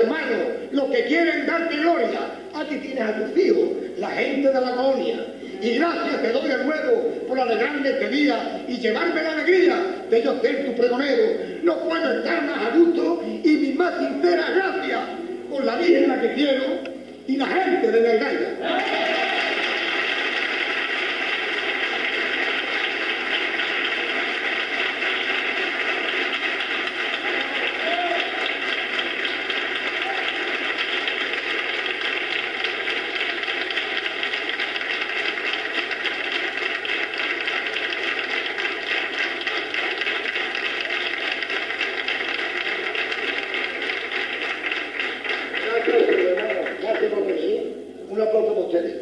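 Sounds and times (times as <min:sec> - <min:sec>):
audience applauding: 0:18.6 - 0:47.6.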